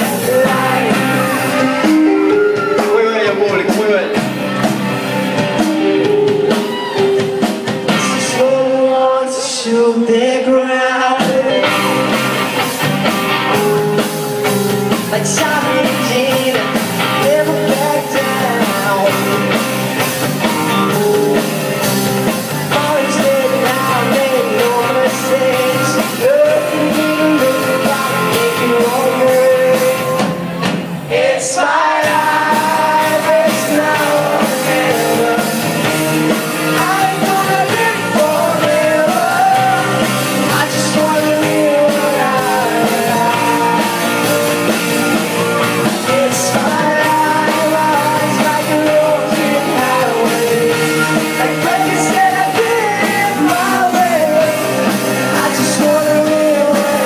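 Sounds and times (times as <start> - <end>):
person singing: 0.0 - 4.7, 5.6 - 12.3, 13.5 - 19.8, 20.8 - 30.4, 31.1 - 57.0
drum kit: 0.0 - 9.1, 11.0 - 57.0
electric guitar: 0.0 - 57.0
live rock band playing: 0.0 - 57.0.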